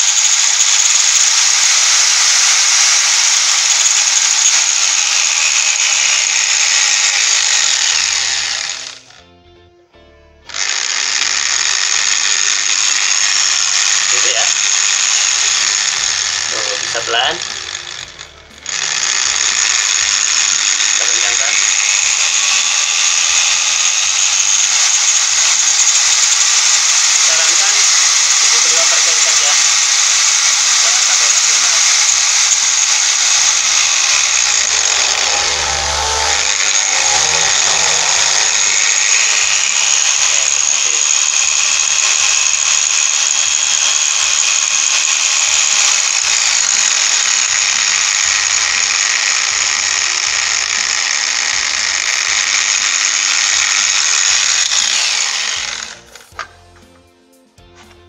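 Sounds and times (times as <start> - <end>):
angle grinder running: 0.0 - 9.3, 10.5 - 56.6.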